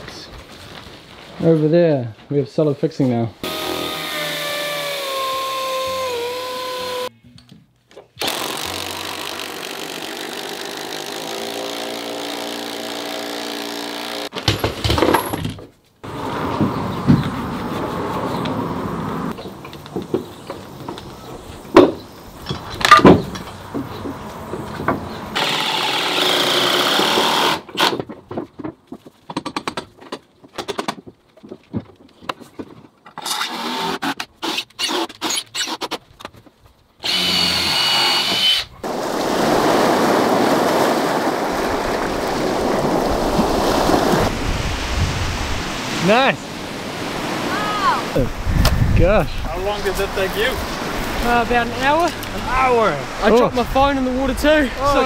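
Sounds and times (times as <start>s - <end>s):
cordless drill whining: 3.4s - 7.1s, 37.0s - 38.7s.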